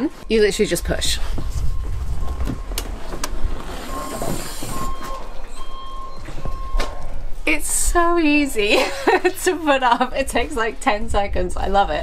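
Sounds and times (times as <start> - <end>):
low rumbling: 0.1 - 8.7.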